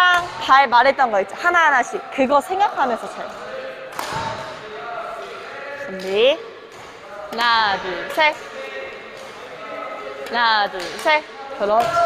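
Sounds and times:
faint voices in a hall: 0.0s - 12.0s.

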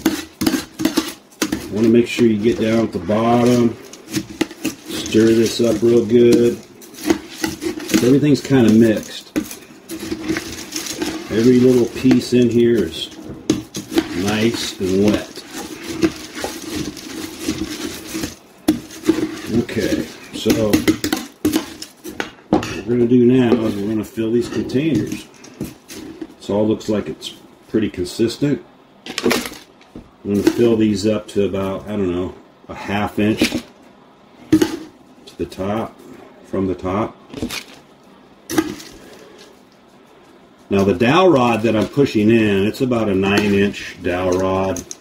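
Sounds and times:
spoon stirring wet birdseed: 0.0s - 21.9s
low room noise: 0.0s - 45.0s.

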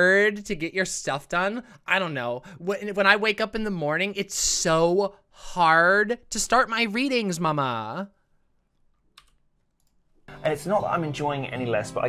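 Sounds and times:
computer keys clicking: 9.1s - 10.0s.

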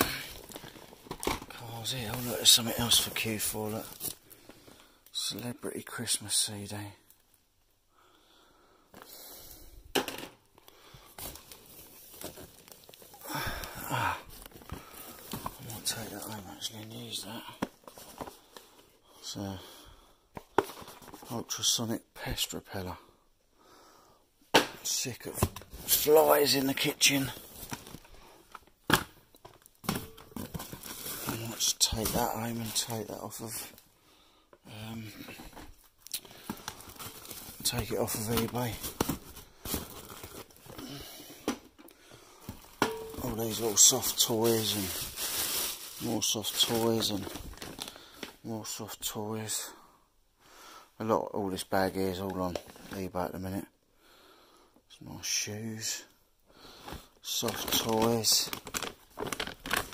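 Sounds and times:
plastic packaging rustling: 0.0s - 5.3s, 10.0s - 19.0s, 20.4s - 21.6s, 24.9s - 33.8s, 35.1s - 48.9s, 56.8s - 59.9s.

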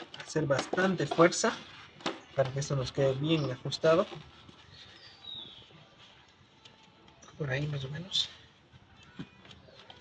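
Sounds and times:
plastic pot being handled: 0.0s - 10.0s.

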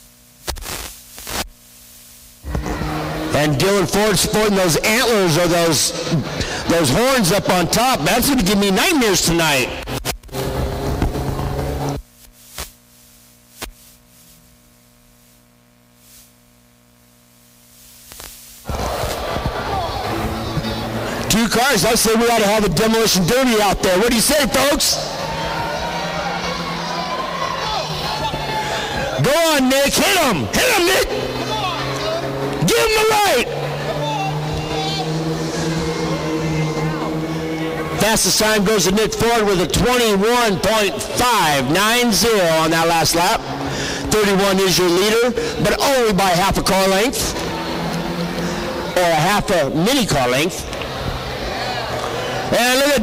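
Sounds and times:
faint steady hum: 0.0s - 53.0s
race car engines passing: 2.5s - 8.8s, 9.8s - 12.0s, 18.7s - 29.3s, 29.9s - 52.8s
man commentating: 3.2s - 9.8s, 21.0s - 25.2s, 27.6s - 47.4s, 48.9s - 50.6s, 52.5s - 53.0s.

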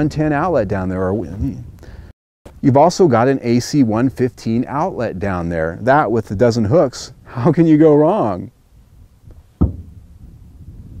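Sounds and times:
low rumbling noise: 0.0s - 11.0s
dull thump: 9.3s - 10.0s.

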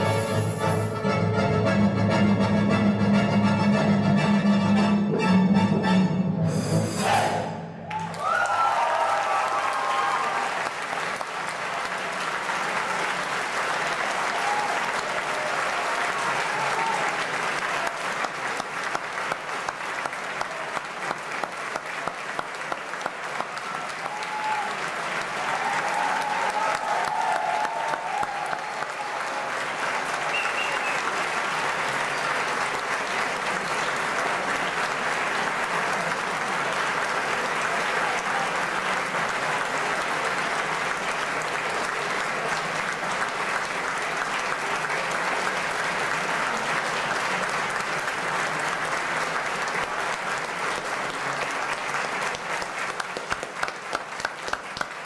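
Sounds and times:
audience applauding: 7.9s - 55.0s
rhythmic clapping: 9.7s - 55.0s.

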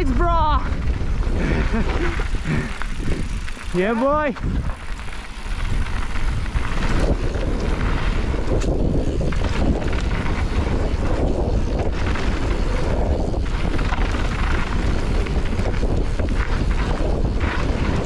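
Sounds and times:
bike rattling: 0.0s - 18.0s
bike tyres rolling on gravel: 0.0s - 18.0s
wind rushing over microphone: 0.0s - 18.0s.

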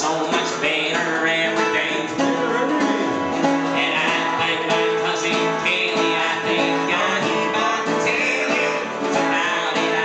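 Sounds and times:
drum kit playing: 0.0s - 10.0s
strummed acoustic guitar: 0.0s - 10.0s.

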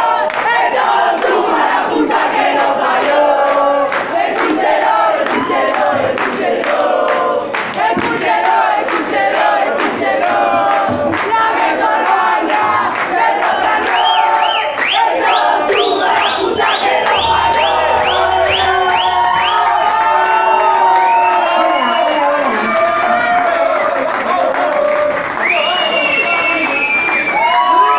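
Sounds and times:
crowd shouting and cheering: 0.0s - 27.9s
shrill whistles: 13.5s - 23.1s, 25.4s - 27.9s.

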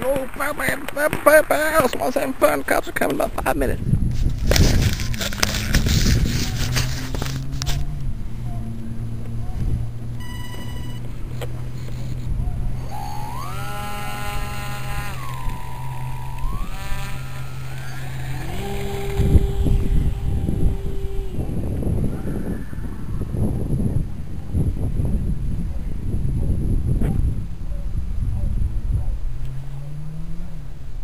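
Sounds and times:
wind on microphone: 3.3s - 29.6s
microphone handling noise: 3.7s - 28.8s
steady low hum: 3.8s - 23.9s
small electric motor whining: 4.1s - 7.8s, 10.2s - 21.7s.

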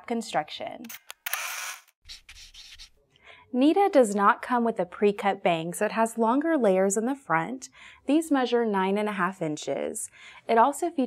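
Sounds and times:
scratchy burst of noise: 1.3s - 2.9s.

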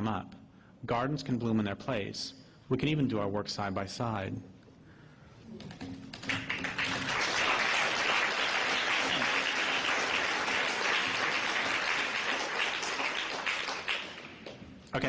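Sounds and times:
audience applauding: 6.1s - 14.6s.

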